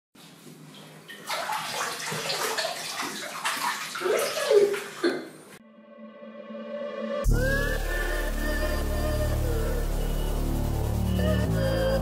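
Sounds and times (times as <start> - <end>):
water splashing and sloshing: 0.3 - 5.6.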